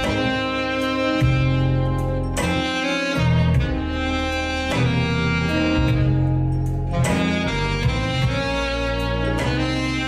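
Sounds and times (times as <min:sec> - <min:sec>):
alto saxophone melody: 0:00.0 - 0:10.0
steady bass line: 0:00.0 - 0:10.0.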